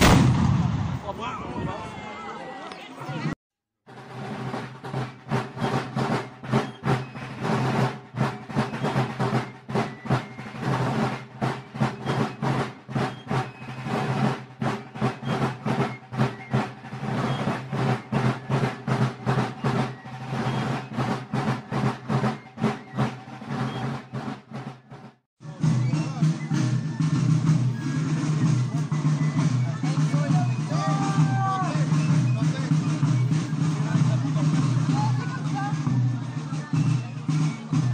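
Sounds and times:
marching drums: 0:00.0 - 0:01.7, 0:03.2 - 0:37.9
band playing with voices: 0:00.0 - 0:37.9.

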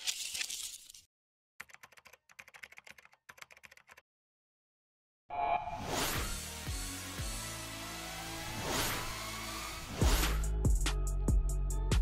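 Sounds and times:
keyboard typing clicks: 0:01.6 - 0:04.0.

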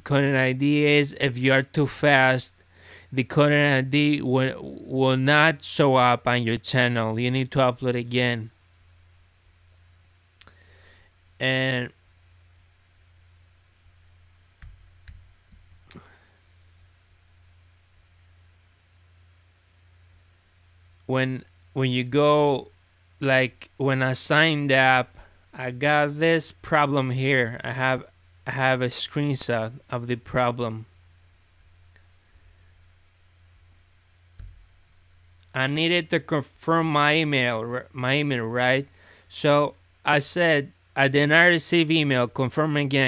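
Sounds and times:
low steady hum: 0:00.0 - 0:43.0.

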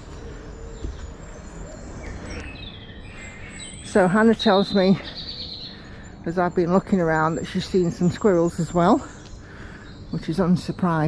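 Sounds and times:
birds singing: 0:00.0 - 0:11.0.

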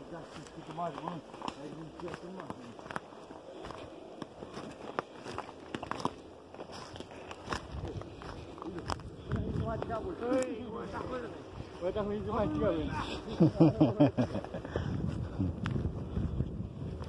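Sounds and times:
footsteps through undergrowth: 0:00.0 - 0:17.0
twigs snapping underfoot: 0:00.3 - 0:10.6
faint voices talking: 0:06.7 - 0:13.7.

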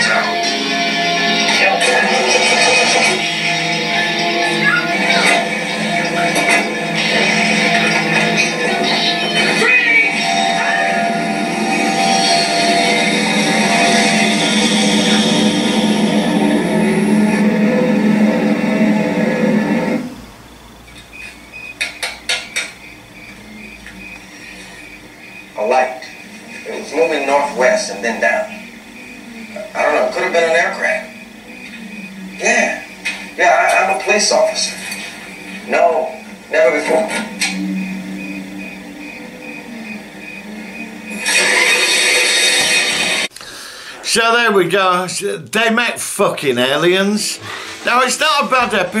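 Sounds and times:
faint broken high tone: 0:00.0 - 0:19.6, 0:22.8 - 0:42.9
soundtrack music: 0:00.0 - 0:20.1
low electronic drone: 0:00.0 - 0:43.4
high pulsing beep: 0:21.2 - 0:43.2.

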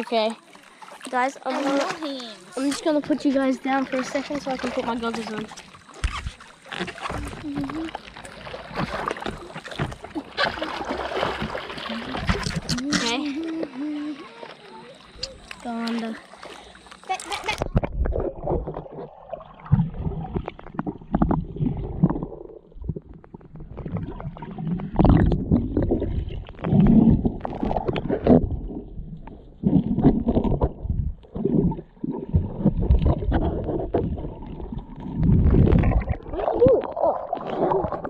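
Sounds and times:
underwater creek water gurgling: 0:00.0 - 0:38.0.

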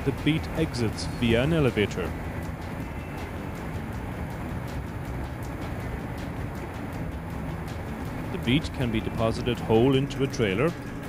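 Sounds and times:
machine running with low rumble: 0:00.0 - 0:11.0.

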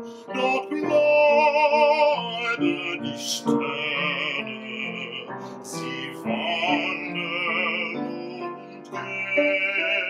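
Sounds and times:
man singing classical song: 0:00.0 - 0:10.0.

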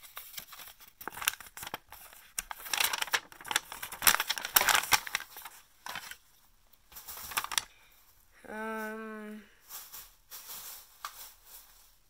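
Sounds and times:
paper rustling: 0:00.0 - 0:06.3, 0:06.9 - 0:07.8.

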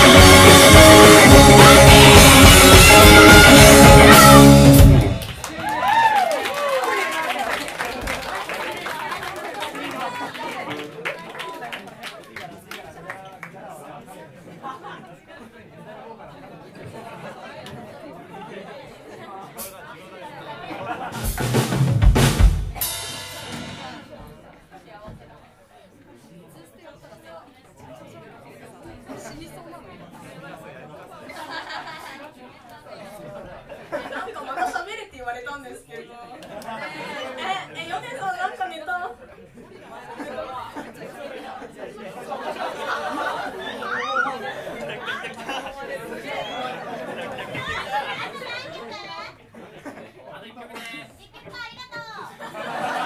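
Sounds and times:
chatter of many voices: 0:06.8 - 0:21.3, 0:23.6 - 0:53.0.

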